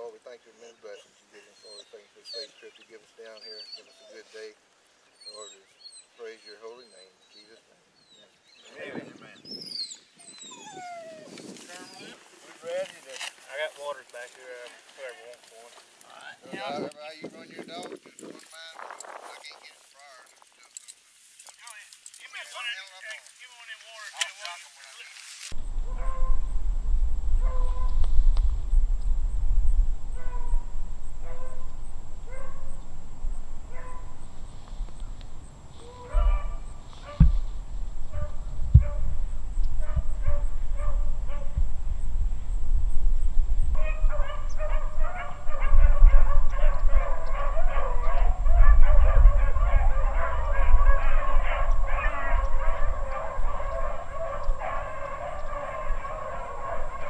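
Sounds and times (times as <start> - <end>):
beagles baying: 25.6 - 29.2, 29.8 - 41.7, 43.7 - 57.0.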